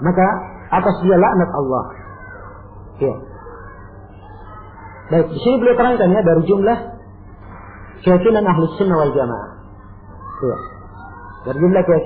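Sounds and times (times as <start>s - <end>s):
faint background hum: 0.0s - 12.0s.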